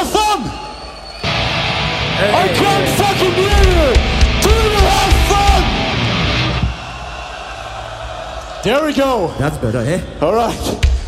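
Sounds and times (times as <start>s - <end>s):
metal band playing: 1.3s - 6.8s.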